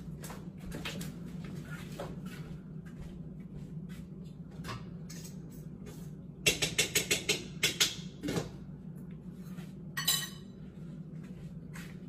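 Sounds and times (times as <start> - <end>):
steady low hum: 0.0 - 12.0
dishes and utensils clattering: 10.0 - 10.6.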